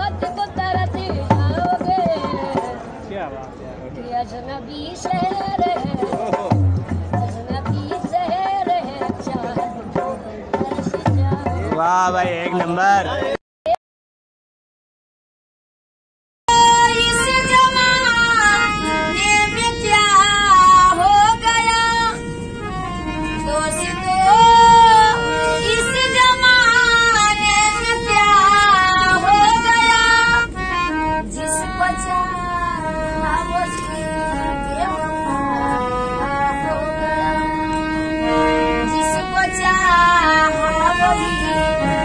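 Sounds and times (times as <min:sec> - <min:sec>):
train horn blast: 0:16.8 - 0:42.0.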